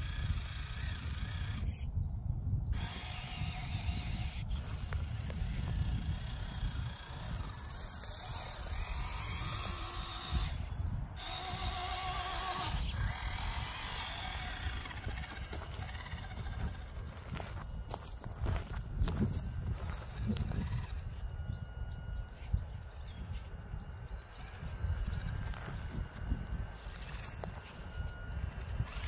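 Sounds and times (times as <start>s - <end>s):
small electric motor whining: 0.0s - 29.0s
wind rumble on microphone: 0.0s - 29.0s.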